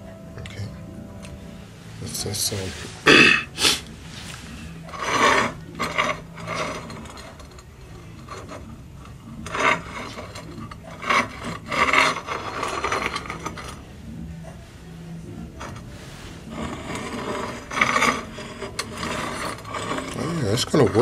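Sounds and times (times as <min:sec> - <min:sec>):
brick pieces scraping on stone: 0:04.2 - 0:13.9, 0:15.6 - 0:21.0.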